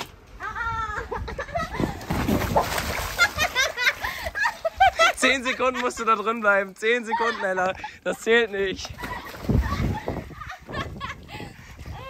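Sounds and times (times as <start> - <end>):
water splashing: 1.7 - 6.0, 8.5 - 10.7.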